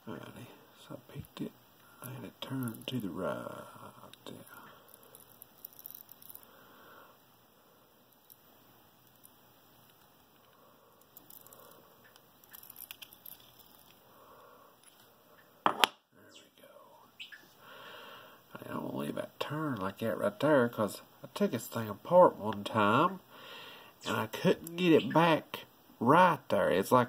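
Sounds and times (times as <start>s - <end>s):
metal lock parts clicking and scraping: 12.4s - 14.0s.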